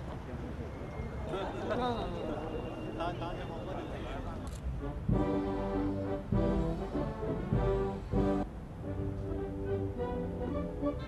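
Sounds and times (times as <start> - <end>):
brass band playing slow chords: 4.8 - 11.0.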